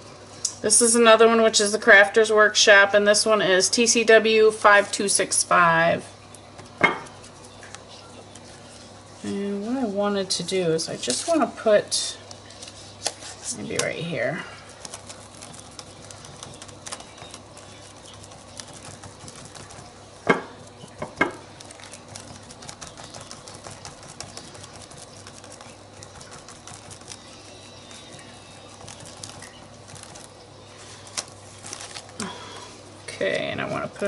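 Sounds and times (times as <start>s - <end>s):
sponge dabbing paint: 14.7s - 32.1s.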